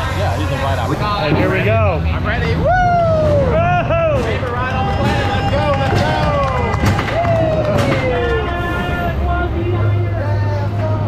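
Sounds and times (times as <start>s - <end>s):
roller coaster train rumble: 0.0s - 11.0s
riders whooping and shouting: 2.6s - 9.3s.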